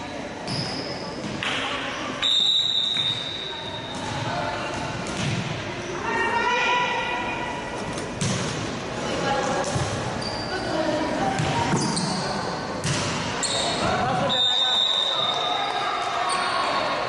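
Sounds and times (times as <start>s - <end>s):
referee's whistle: 2.2s - 3.9s, 13.4s - 15.6s
volleyball slaps echoing: 4.0s - 5.8s, 8.1s - 8.8s, 11.3s - 12.0s, 12.8s - 14.3s.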